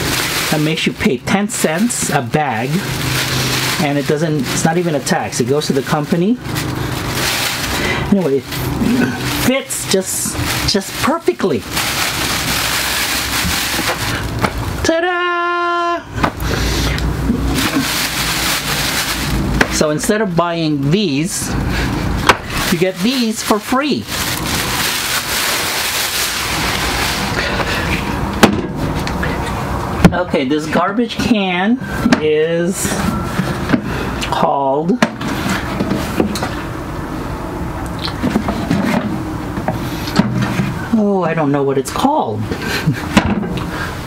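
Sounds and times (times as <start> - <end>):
plastic bag rustling and crinkling: 0.0 - 14.8, 16.4 - 29.5
steady background noise: 0.0 - 44.0.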